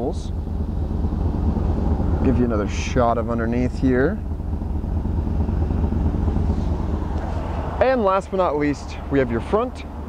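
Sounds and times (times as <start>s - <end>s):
bus engine idling: 0.0s - 10.0s.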